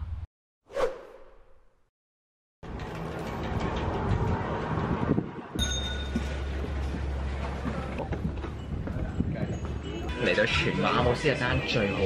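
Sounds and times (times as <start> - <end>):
whoosh effect: 0.7 - 1.8.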